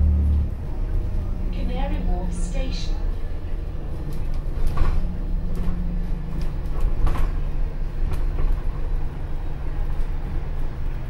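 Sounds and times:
bus cabin drone: 0.0s - 11.0s.

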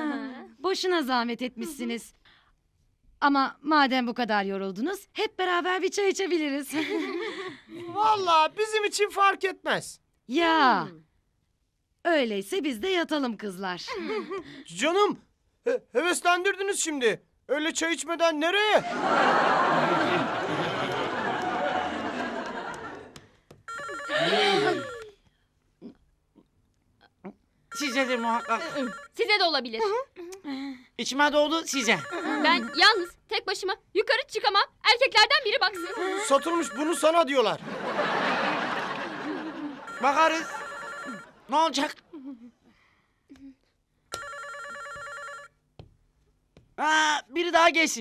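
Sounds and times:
telephone ringing: 23.6s - 25.1s, 27.7s - 29.4s, 31.7s - 33.2s, 35.7s - 37.5s, 39.8s - 41.6s, 44.1s - 45.6s
person crying out: 23.9s - 25.1s.

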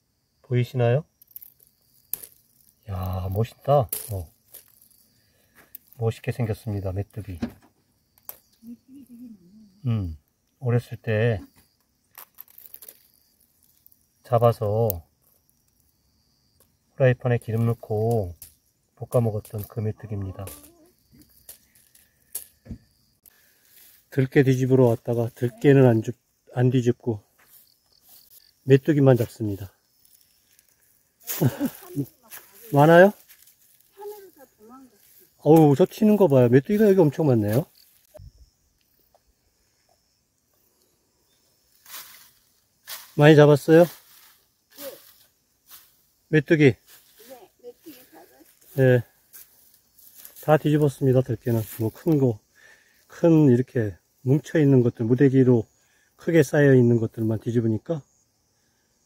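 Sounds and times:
dry stalks rustling and crackling: 1.1s - 7.3s, 8.0s - 9.2s, 11.6s - 16.0s, 17.4s - 26.0s, 27.4s - 39.0s, 41.6s - 46.2s, 46.8s - 52.2s.

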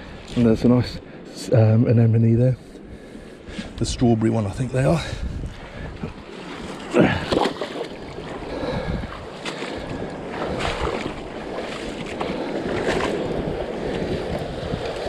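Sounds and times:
water sloshing in rock pool: 4.7s - 15.0s.

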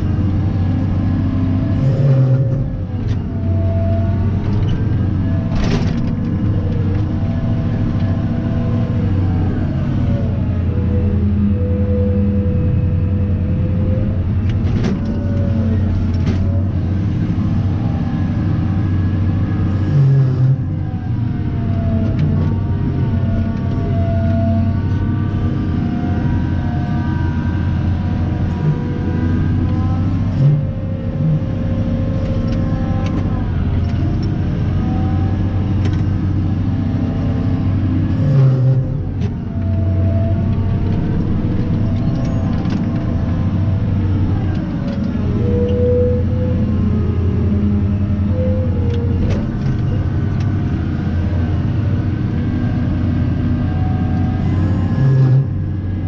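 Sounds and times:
diesel engine revving under load: 0.0s - 56.0s.

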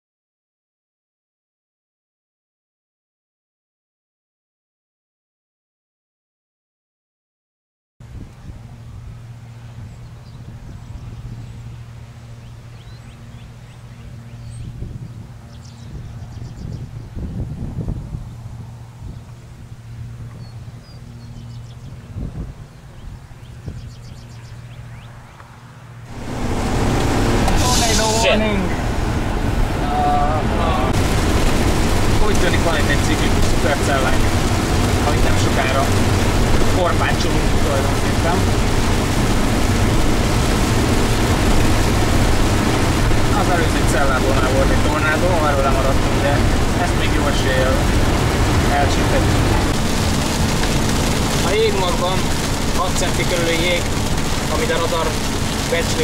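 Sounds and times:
road and engine noise inside car: 24.1s - 56.0s
indistinct voices talking: 26.2s - 38.5s, 43.1s - 56.0s.

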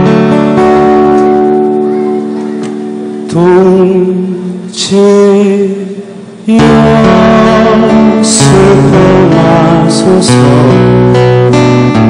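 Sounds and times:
strummed acoustic guitar chord: 0.0s - 12.0s.

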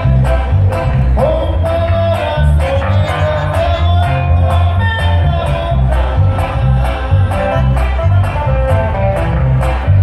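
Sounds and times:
bass line: 0.0s - 10.0s
live band playing: 0.0s - 10.0s
plucked guitars: 0.0s - 10.0s.

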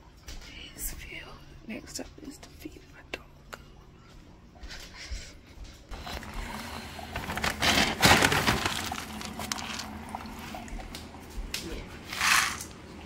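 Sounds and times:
kibble rattling into a bowl: 12.1s - 12.7s.

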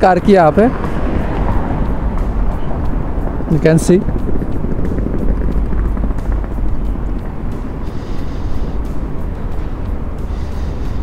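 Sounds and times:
low rumble of street noise: 0.0s - 11.0s.

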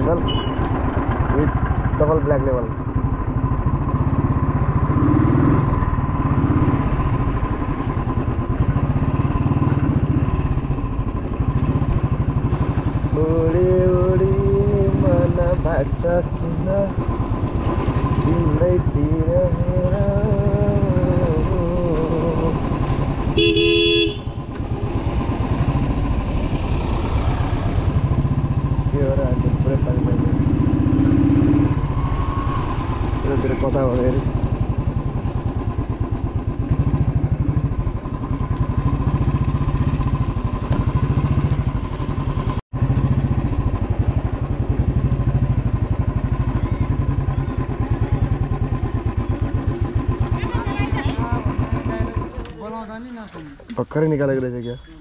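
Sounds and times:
motorcycle engine running: 0.0s - 55.0s
horn honk: 0.2s - 0.8s, 23.2s - 24.8s.

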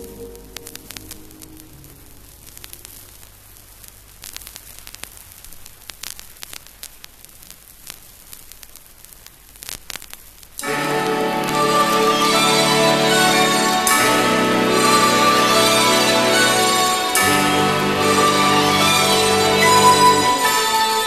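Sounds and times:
music track: 0.0s - 2.7s, 10.6s - 21.0s
low mains hum: 0.0s - 9.6s
steady hiss: 0.0s - 21.0s
vinyl record crackle and clicks: 0.0s - 21.0s.

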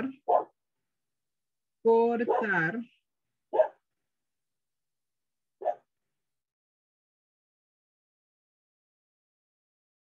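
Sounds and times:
dog bark: 0.2s - 0.6s, 2.3s - 2.7s, 3.5s - 3.8s, 5.6s - 5.9s.

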